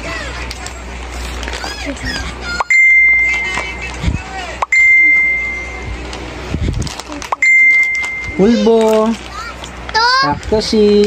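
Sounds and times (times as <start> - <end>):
bell-like ding: 4.7 - 5.8.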